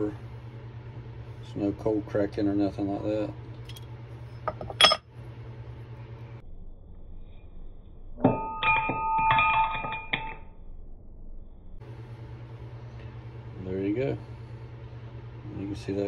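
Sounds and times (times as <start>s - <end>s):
low steady hum: 0.0s - 16.0s
metal parts clinking: 4.5s - 5.0s.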